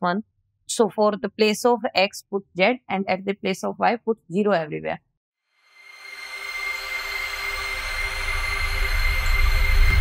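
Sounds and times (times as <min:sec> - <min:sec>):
thin high tone: 0:05.7 - 0:10.0
whooshing swell: 0:05.8 - 0:10.0
deep rumble: 0:07.3 - 0:10.0.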